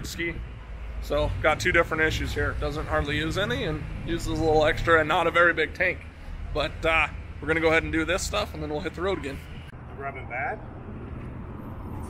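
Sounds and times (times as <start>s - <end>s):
voices: 0.0s - 10.6s
low vehicle rumble: 0.0s - 12.0s.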